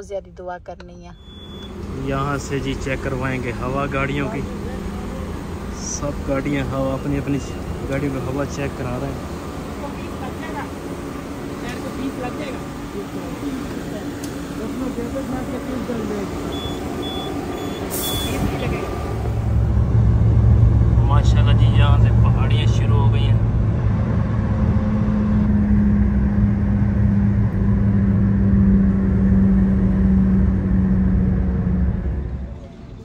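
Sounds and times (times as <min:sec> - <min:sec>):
road and engine rumble: 0:00.0 - 0:33.0
brief hiss: 0:17.9 - 0:18.6.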